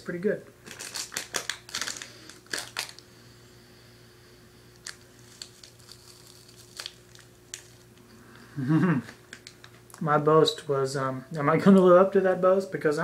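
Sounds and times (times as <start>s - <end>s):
low steady hum: 0.0s - 13.0s
plastic wrapper crinkling: 0.6s - 3.1s, 4.7s - 8.0s.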